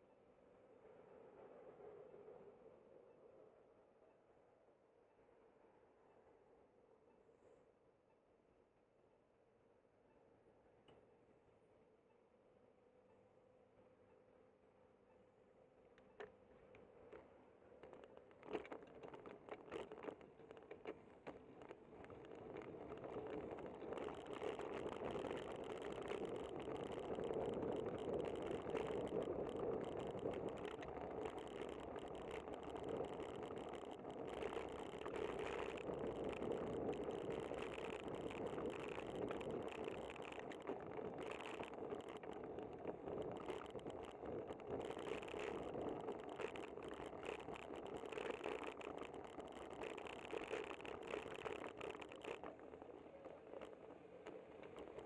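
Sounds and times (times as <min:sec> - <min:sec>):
bicycle tyre hum on pavement: 0:17.0 - 0:55.0
bike and mount rattling: 0:17.8 - 0:52.8.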